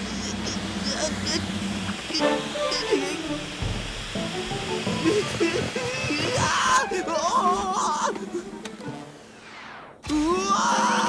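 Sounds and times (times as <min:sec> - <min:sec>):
steady rushing noise: 0:00.0 - 0:07.0
background music: 0:02.1 - 0:09.6.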